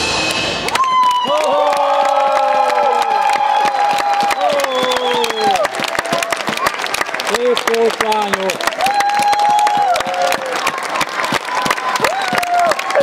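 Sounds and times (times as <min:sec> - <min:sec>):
music: 0:00.0 - 0:01.1
spectators cheering: 0:00.1 - 0:13.0
spectators clapping: 0:00.6 - 0:13.0.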